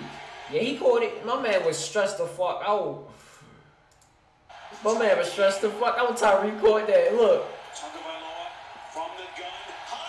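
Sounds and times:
sports commentator speaking: 4.7 - 10.0.

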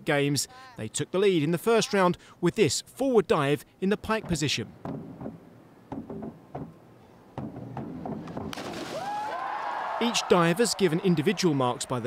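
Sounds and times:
diving springboards knocking: 4.2 - 9.2
crowd cheering and applause: 8.8 - 12.0.

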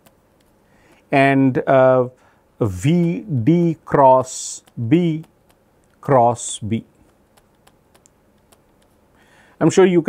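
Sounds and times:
stylus tapping on pen tablet: 4.6 - 6.0, 7.0 - 9.0.

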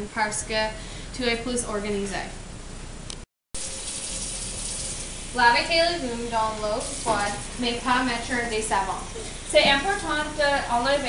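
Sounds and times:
faucet water pouring into sink: 3.6 - 7.8.

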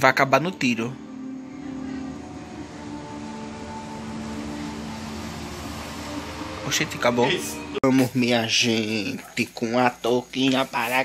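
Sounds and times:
tense music from television: 0.0 - 10.3.

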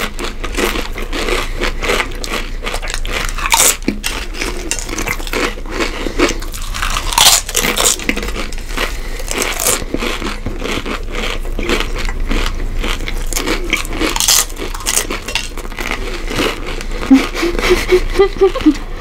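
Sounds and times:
people crunching tortilla chips: 0.0 - 19.0.

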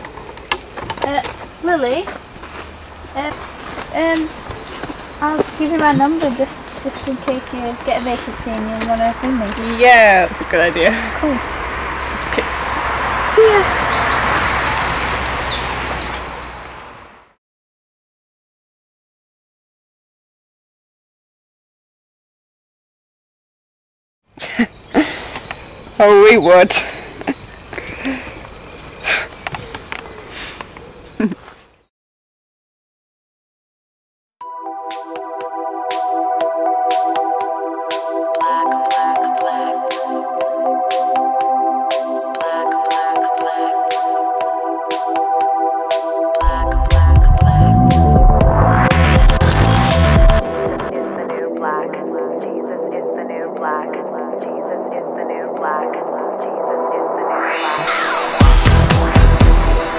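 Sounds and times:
outdoor background noise: 0.0 - 17.4, 24.3 - 31.9
small birds chirping: 3.0 - 9.9, 13.3 - 17.2, 24.3 - 31.9
pulsing synth pattern: 43.8 - 50.9, 57.1 - 59.9
low synth drone: 46.4 - 50.9, 57.1 - 59.9.

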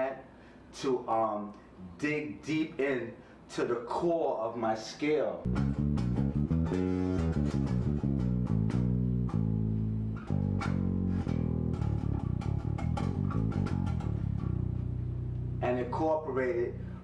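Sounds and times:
electric bass guitar notes: 5.5 - 17.0.

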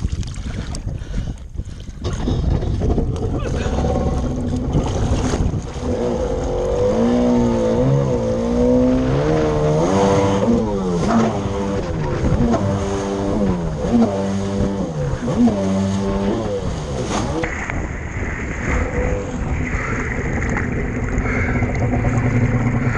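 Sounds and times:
jet ski engine revving: 2.0 - 22.9.

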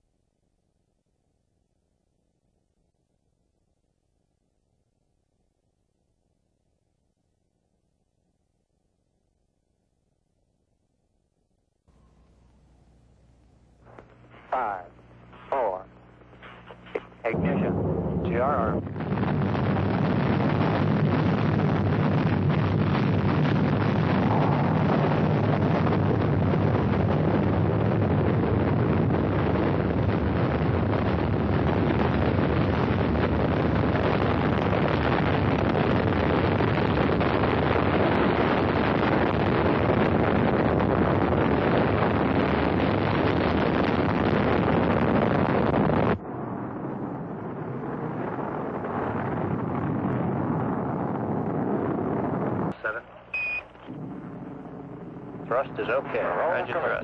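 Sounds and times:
rocket engines roaring: 12.0 - 57.0.

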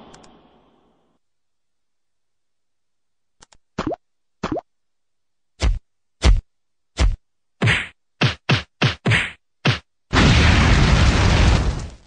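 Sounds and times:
cartoon punch whacks: 5.6 - 6.4, 7.0 - 10.6
rushing fire burst: 10.1 - 12.0.

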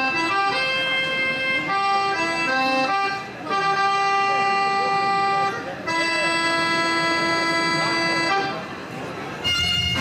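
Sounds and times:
accordion chords: 0.0 - 10.0
folk band playing: 0.0 - 10.0.

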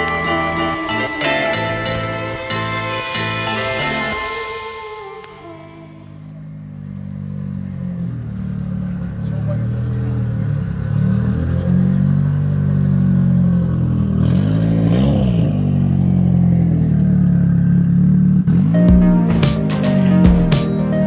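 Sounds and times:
car engine idling and revving: 0.0 - 21.0.

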